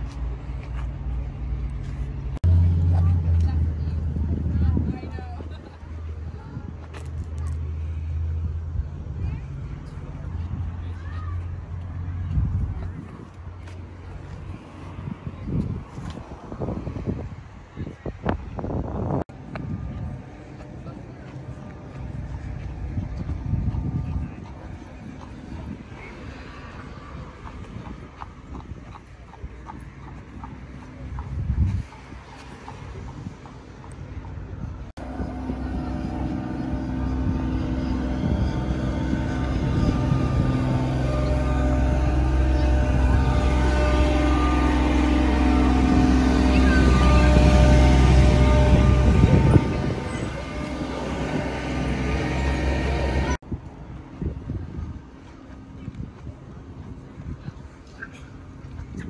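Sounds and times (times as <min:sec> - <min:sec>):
wind rumble on microphone: 0:00.0 - 0:59.0
clip-clop steps on pavement: 0:27.0 - 0:34.7
diesel truck engine idling: 0:35.0 - 0:53.4.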